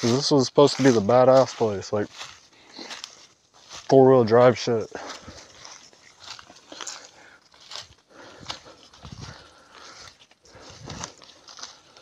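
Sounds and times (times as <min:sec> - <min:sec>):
footsteps crunching dry leaves: 0:00.0 - 0:12.0.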